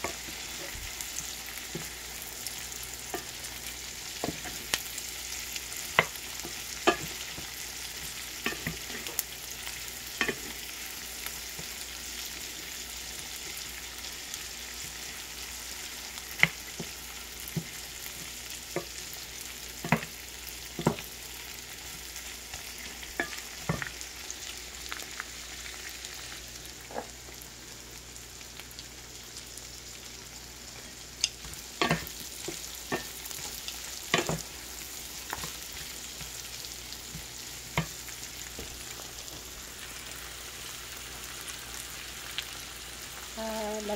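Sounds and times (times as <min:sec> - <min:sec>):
shrimp sizzling in pan: 0:00.0 - 0:43.9.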